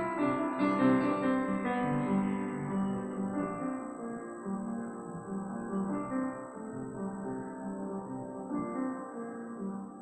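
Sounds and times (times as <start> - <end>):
upright piano playing: 0.0 - 10.0.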